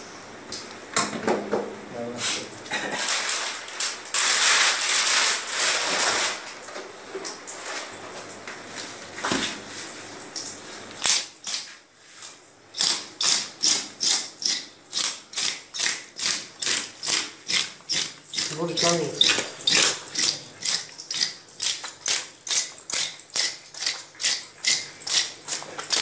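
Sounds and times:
rustling and handling noise: 2.2s - 11.0s
scaler scraping fish scales: 16.6s - 21.8s.

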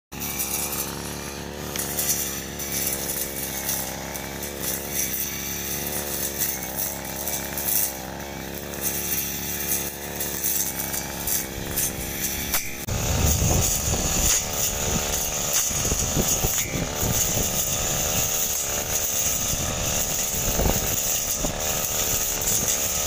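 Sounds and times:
brush cutter engine running: 0.1s - 23.0s
swish of cut grass: 0.2s - 23.0s.

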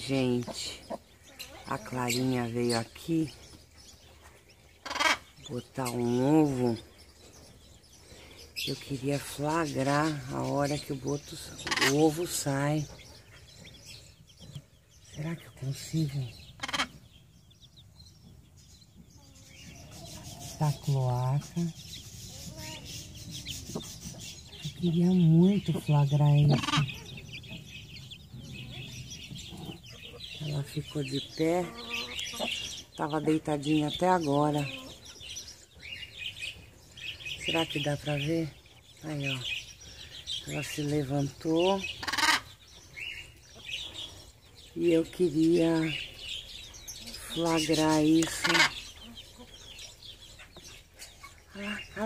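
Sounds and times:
hen chirping: 0.0s - 52.0s.

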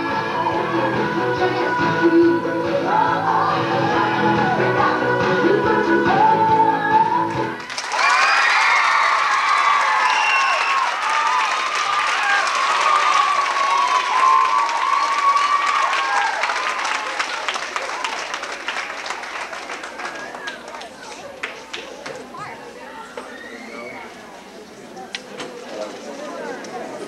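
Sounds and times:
people cheering and whooping: 7.6s - 18.4s
audience applauding: 7.6s - 22.1s.

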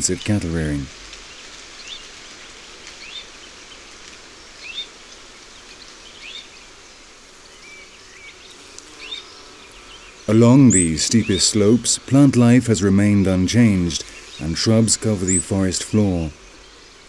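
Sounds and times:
birds chirping: 0.0s - 17.0s
outdoor ambience hiss: 0.0s - 17.0s.

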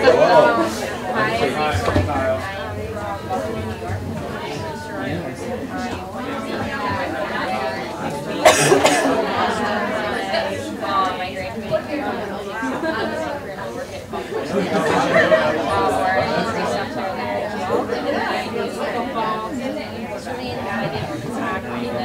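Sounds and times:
chatter of many people: 0.0s - 22.0s.

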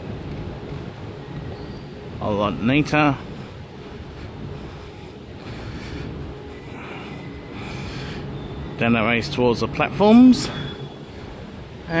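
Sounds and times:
station hum and rumble: 0.0s - 12.0s.

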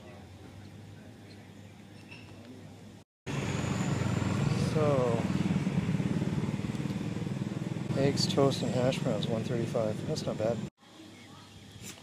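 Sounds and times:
vehicle engine running: 3.3s - 10.7s.

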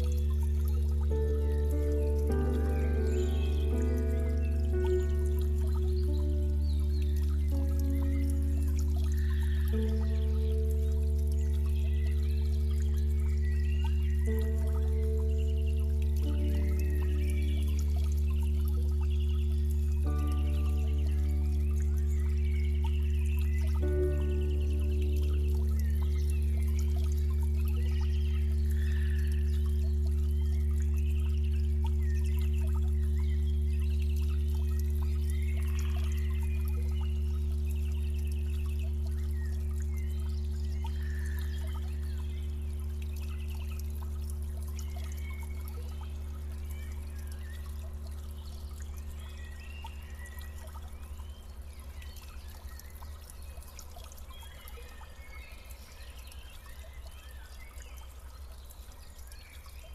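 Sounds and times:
low steady hum of held tones: 0.0s - 59.9s
small birds chirping: 0.0s - 59.9s
stream trickling over stones: 0.0s - 59.9s.

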